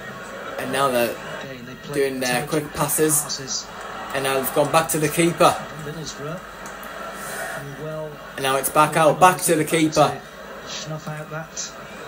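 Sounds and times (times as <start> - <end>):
background murmur: 0.0 - 12.0.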